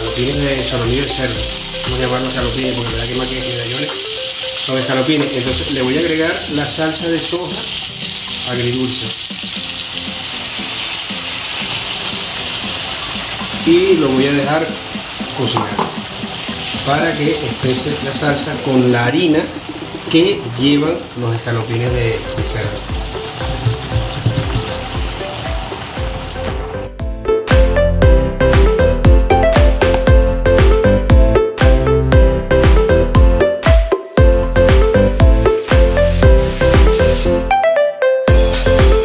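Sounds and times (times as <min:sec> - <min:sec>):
background music with a beat: 0:00.0 - 0:06.3, 0:09.2 - 0:20.9, 0:21.9 - 0:39.0
frying pan sizzling: 0:00.0 - 0:27.8, 0:34.6 - 0:37.3, 0:38.3 - 0:39.0
sauce poured into pan: 0:00.1 - 0:17.6.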